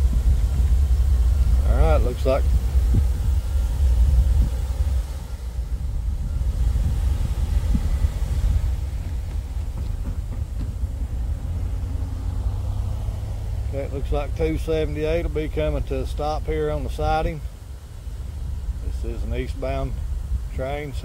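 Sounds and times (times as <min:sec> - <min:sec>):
diesel locomotive rumble: 0:00.0 - 0:21.0.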